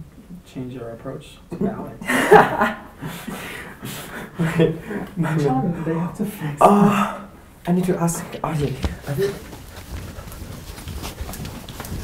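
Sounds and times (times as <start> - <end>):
quick footsteps on hard floor: 8.6 - 12.0.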